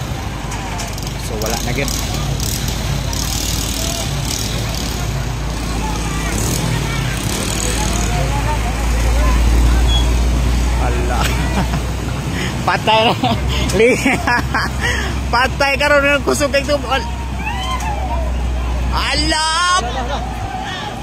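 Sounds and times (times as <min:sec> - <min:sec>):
crowd talking: 0:00.0 - 0:21.0
vehicle engines: 0:00.0 - 0:21.0
vehicle low rumble: 0:00.0 - 0:21.0.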